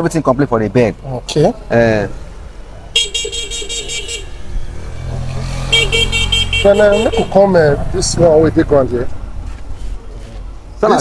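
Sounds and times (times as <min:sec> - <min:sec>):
engine rumble: 0:00.0 - 0:11.0
vehicle horn stuttering beeps: 0:03.0 - 0:04.4, 0:05.6 - 0:07.4.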